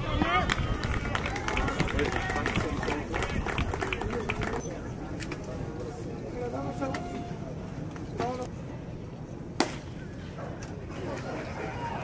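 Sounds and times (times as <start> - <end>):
outdoor ballpark background: 0.0 - 12.0.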